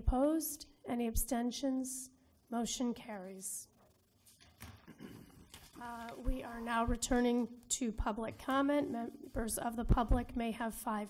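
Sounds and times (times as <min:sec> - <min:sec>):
woman speaking: 0:00.0 - 0:03.7, 0:05.8 - 0:11.0
faint handling noises: 0:04.2 - 0:07.4.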